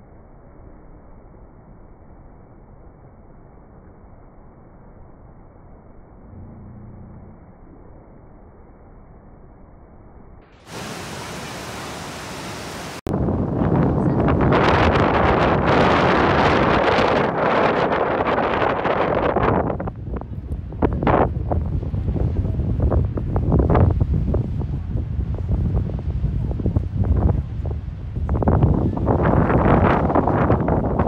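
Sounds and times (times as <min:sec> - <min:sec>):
waterfall rushing: 0:10.7 - 0:13.1
wind buffeting microphone: 0:13.0 - 0:31.0.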